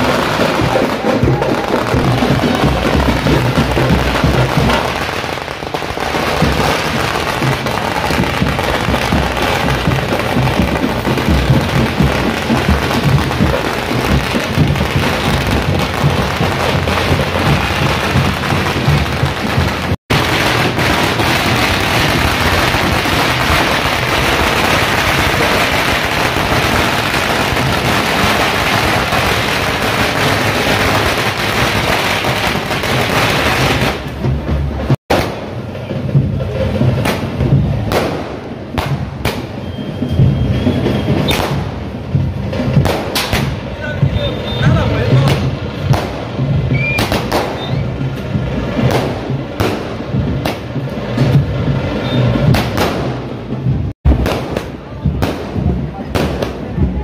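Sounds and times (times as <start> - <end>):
music: 0.0 - 20.0, 31.5 - 57.0
firecrackers crackling: 0.0 - 57.0.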